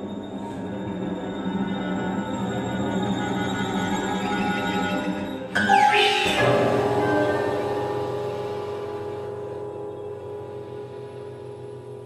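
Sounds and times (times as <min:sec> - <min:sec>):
chamber ensemble sustained tones: 0:00.0 - 0:12.0.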